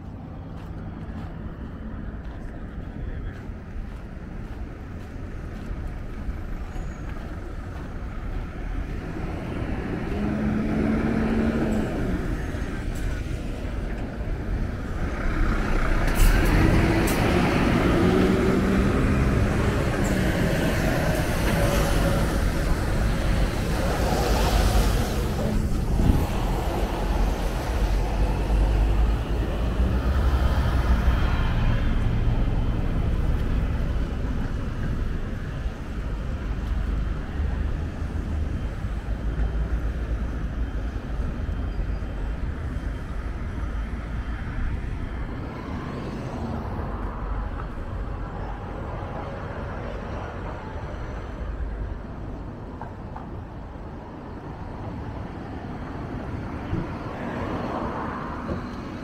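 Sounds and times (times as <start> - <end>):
diesel truck driving past: 0.0 - 59.0
road traffic: 0.0 - 59.0.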